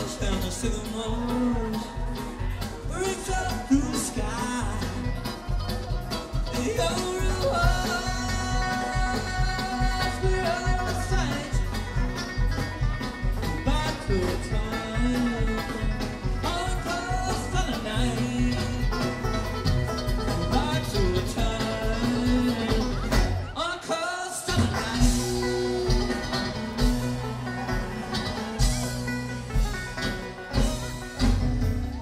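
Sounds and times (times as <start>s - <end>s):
electric bass: 0.0s - 23.5s, 24.6s - 32.0s
acoustic guitar: 0.0s - 32.0s
banjo: 0.0s - 32.0s
mandolin: 0.0s - 32.0s.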